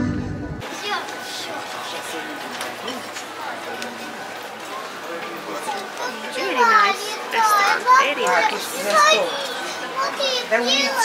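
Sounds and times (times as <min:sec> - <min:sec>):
murmur of street voices: 0:00.0 - 0:11.0
children calling out: 0:05.6 - 0:11.0.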